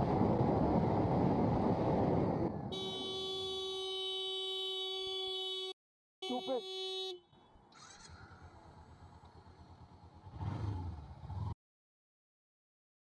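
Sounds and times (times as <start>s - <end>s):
wind and road rush: 0.0s - 4.4s, 7.6s - 11.6s.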